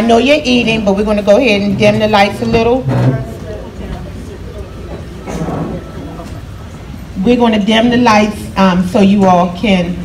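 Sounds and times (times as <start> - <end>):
low rumble of busy hall: 0.0 - 10.0
faint voices: 1.4 - 7.7.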